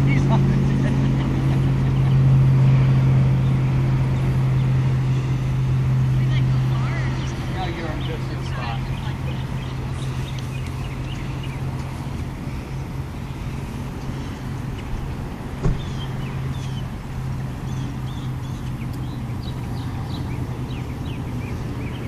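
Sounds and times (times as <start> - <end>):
distant traffic hum: 0.0 - 22.0.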